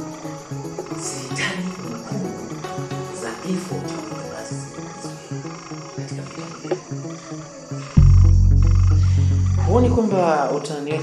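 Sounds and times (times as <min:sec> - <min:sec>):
pulsing croak-like pattern: 0:00.0 - 0:11.0
steady high trill: 0:04.7 - 0:10.3
deep low tone: 0:07.9 - 0:10.0.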